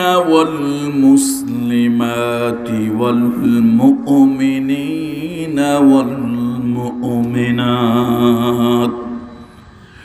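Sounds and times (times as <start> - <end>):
man chanting melodically: 0.0 - 9.6.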